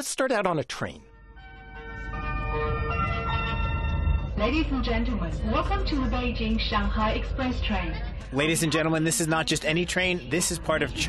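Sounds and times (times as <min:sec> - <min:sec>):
bell-like chime tones: 0:01.5 - 0:04.4
train rumble: 0:01.8 - 0:11.0.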